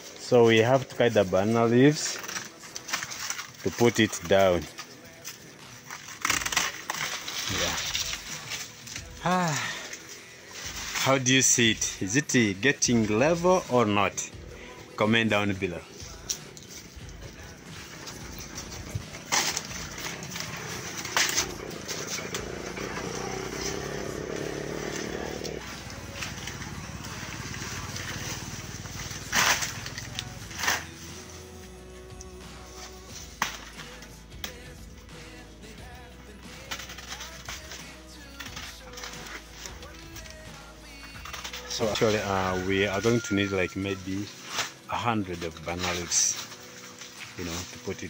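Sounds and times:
rustling of leaves: 0.0 - 32.0, 36.6 - 48.0.

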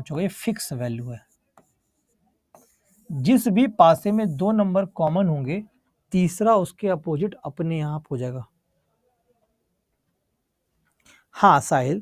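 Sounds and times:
man speaking: 0.0 - 1.3, 3.1 - 8.5, 11.4 - 12.0.

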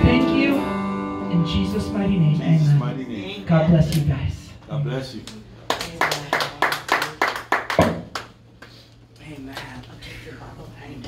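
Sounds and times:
hand clapping: 5.2 - 8.8.

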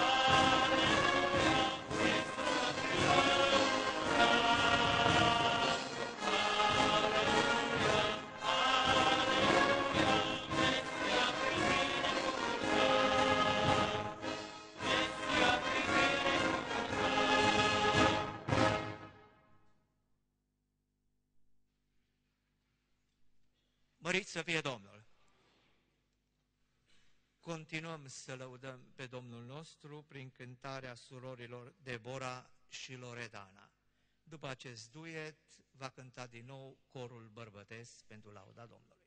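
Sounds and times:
brass band playing: 0.0 - 19.2.

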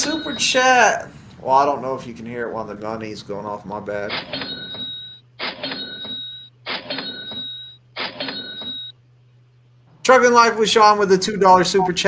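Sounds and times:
cash register cha-ching effect: 4.1 - 8.9.

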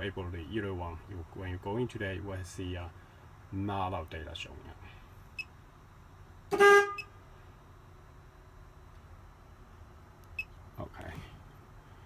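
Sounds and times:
vehicle horn honk: 6.5 - 7.1.

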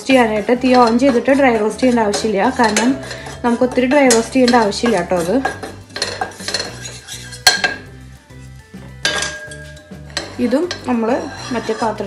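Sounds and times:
faint background music: 0.0 - 12.0
wooden spatula scraping steel pan: 0.0 - 12.0.

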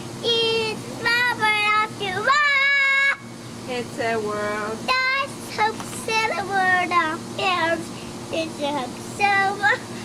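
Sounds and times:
boy singing: 0.2 - 3.2, 4.8 - 10.0.

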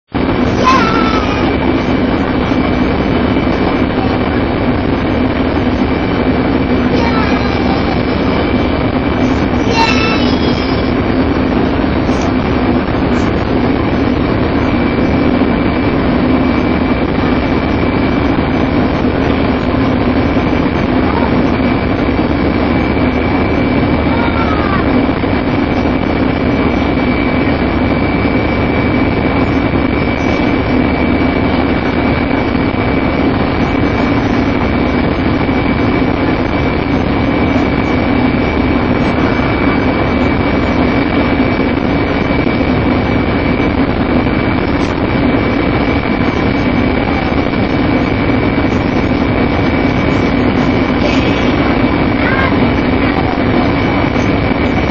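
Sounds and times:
bus diesel engine drone: 0.0 - 54.9
high-pitched whine: 0.0 - 54.9.

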